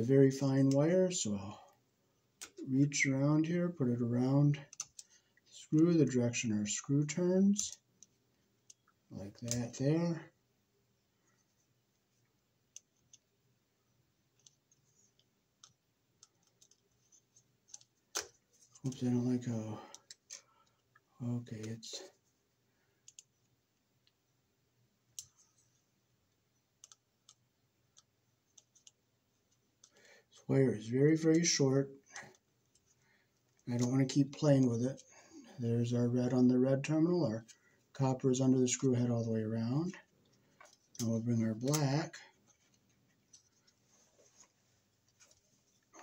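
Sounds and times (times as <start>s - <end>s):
faint clicks and scratches of plastic: 4.5s - 5.9s, 7.5s - 10.2s, 11.2s - 13.3s, 14.2s - 24.2s, 25.1s - 30.4s, 31.2s - 35.5s, 39.8s - 46.0s.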